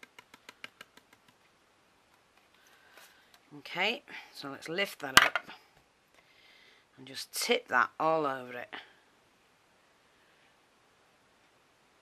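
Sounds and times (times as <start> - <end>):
powder ticking in plastic tray: 0.0 - 1.4.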